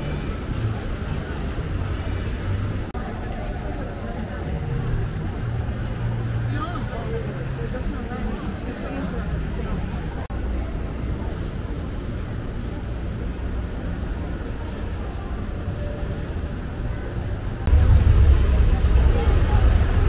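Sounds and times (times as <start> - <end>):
people talking: 0.0 - 20.0
traffic rumble: 0.0 - 20.0.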